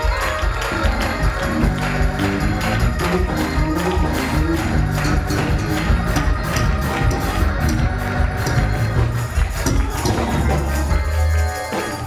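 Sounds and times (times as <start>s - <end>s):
bass line: 0.0s - 12.0s
live band praise music: 0.0s - 12.0s
tambourine jingles: 0.0s - 12.0s.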